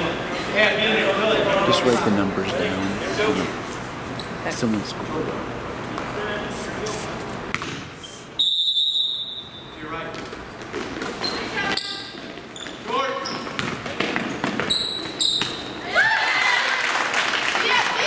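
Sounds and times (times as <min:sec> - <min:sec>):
spectators' voices: 0:00.0 - 0:07.2
shoe squeaks: 0:08.0 - 0:09.9, 0:11.0 - 0:15.8
referee whistle blast: 0:08.4 - 0:09.7
basketball bouncing on hardwood: 0:13.4 - 0:14.7.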